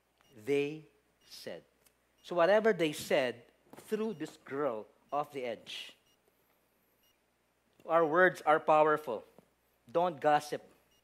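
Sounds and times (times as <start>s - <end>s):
man speaking: 0.3s - 6.1s, 7.8s - 10.8s.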